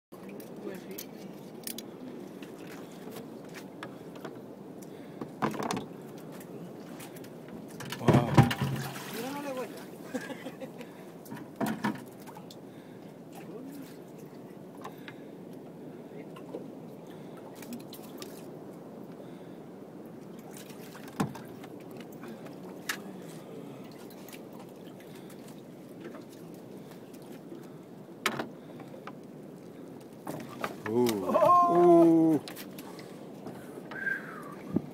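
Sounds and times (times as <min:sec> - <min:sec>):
water lapping against boat hull: 0:00.2 - 0:34.9
water splashes: 0:05.0 - 0:15.1, 0:16.3 - 0:18.6, 0:20.1 - 0:27.8, 0:28.6 - 0:34.9.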